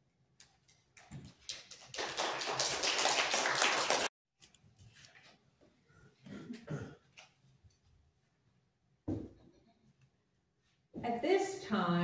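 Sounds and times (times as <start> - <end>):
applause: 1.4 - 4.1.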